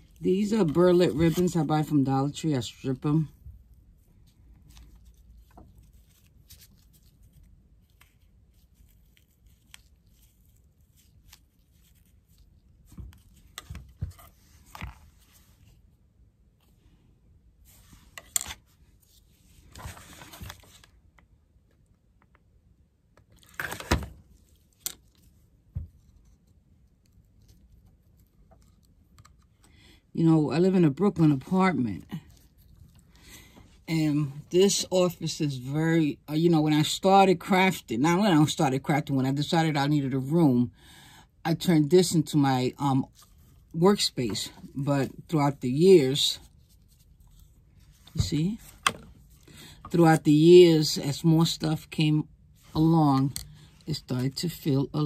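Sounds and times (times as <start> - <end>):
burlap rustling and tearing: 3.8 - 15.8.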